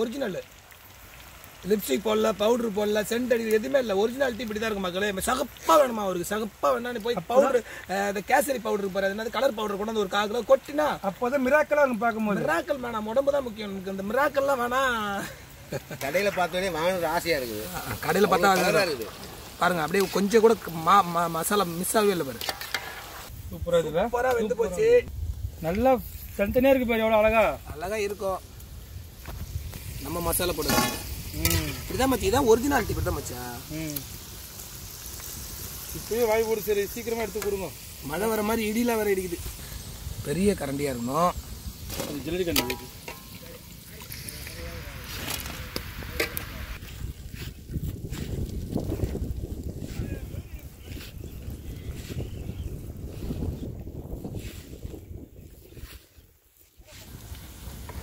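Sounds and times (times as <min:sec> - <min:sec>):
food deep-frying in oil: 0:00.0 - 0:58.0
wind buffeting microphone: 0:23.3 - 0:33.4, 0:44.1 - 0:56.3.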